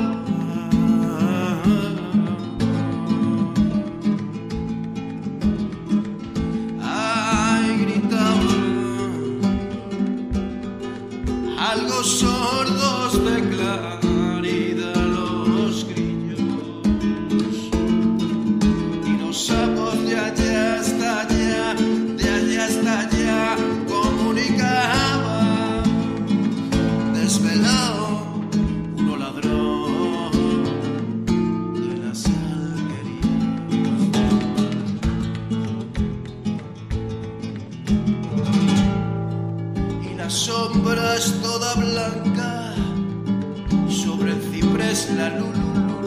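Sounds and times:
acoustic guitar folk song: 0:00.0 - 0:46.0.

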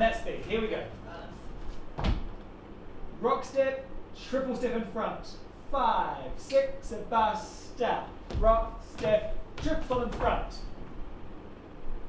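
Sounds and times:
dull thump: 0:02.0 - 0:02.4, 0:08.3 - 0:10.6.

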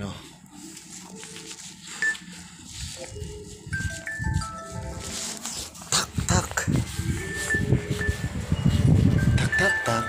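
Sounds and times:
electronic chime melody: 0:03.4 - 0:05.3, 0:07.0 - 0:10.0.

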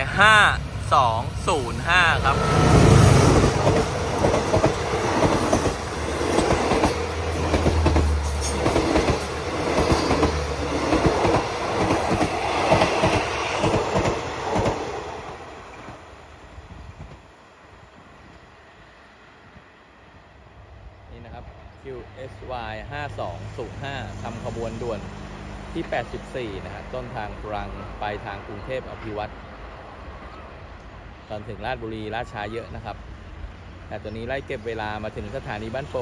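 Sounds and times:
diesel locomotive passing: 0:00.0 - 0:36.0.

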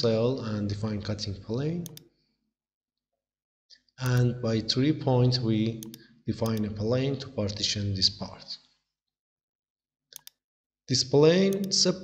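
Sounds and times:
computer mouse click: 0:01.8 - 0:02.1, 0:05.8 - 0:06.7, 0:10.1 - 0:10.4, 0:11.4 - 0:11.8.

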